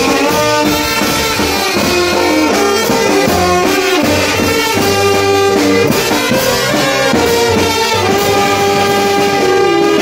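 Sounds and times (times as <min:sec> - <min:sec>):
brass band sustained chord: 0:00.0 - 0:10.0.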